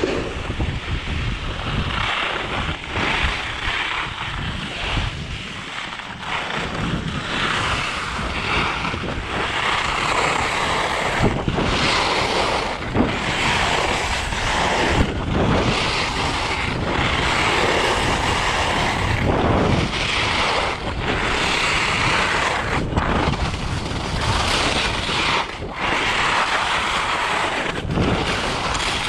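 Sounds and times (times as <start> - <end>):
ski edges hissing and scraping on snow: 0.0 - 29.0
wind buffeting microphone: 0.0 - 29.0.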